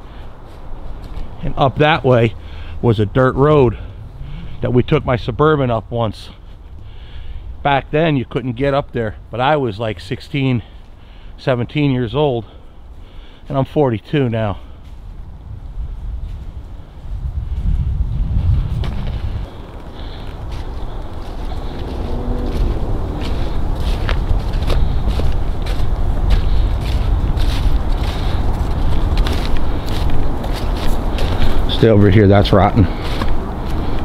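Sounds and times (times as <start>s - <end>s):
footsteps on leaves and gravel: 0.1s - 5.6s, 18.5s - 34.0s
wind noise on microphone: 14.9s - 31.9s.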